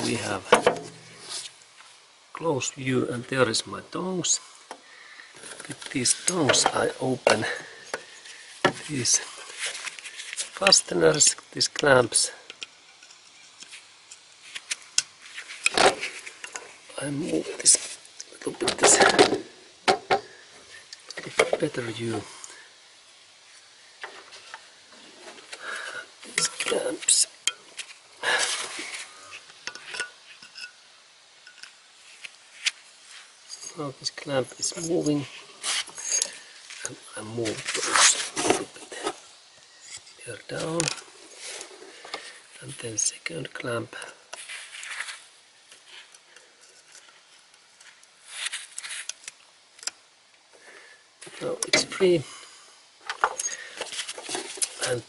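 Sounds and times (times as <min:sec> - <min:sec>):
rustling: 0:00.0 - 0:02.1, 0:05.0 - 0:11.4, 0:12.7 - 0:19.5, 0:23.4 - 0:30.8, 0:31.4 - 0:43.2, 0:44.1 - 0:49.5, 0:53.1 - 0:55.0.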